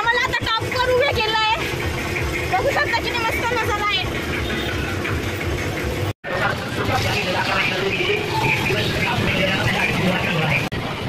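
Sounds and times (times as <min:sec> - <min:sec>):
voices talking: 0:00.0 - 0:05.2, 0:06.3 - 0:10.8.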